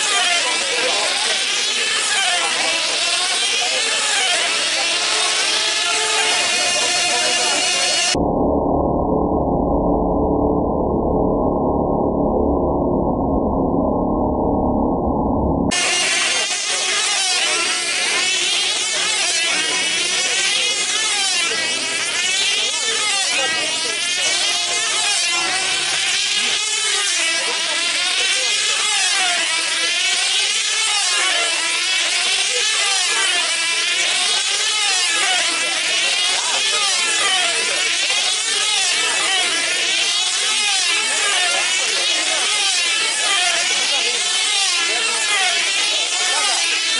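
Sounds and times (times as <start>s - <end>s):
model aircraft engines screaming: 0.0s - 8.2s, 15.7s - 46.9s.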